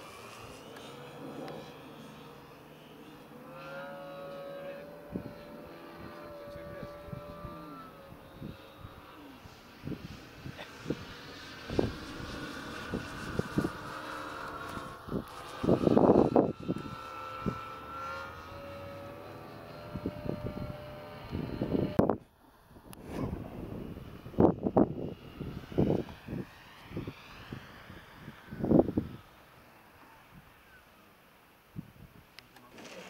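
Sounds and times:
biplane propeller engine overhead: 0.0s - 33.0s
wind thumping on microphone: 22.8s - 29.2s.

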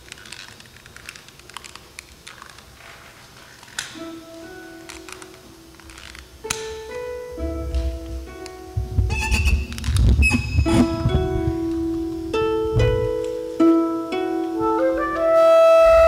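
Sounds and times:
harp plucked notes: 6.4s - 16.0s
deep bass notes: 7.4s - 13.3s.

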